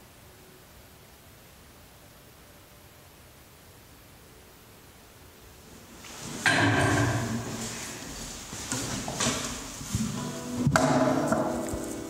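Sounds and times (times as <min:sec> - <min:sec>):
acoustic guitar chords: 0:09.4 - 0:12.0.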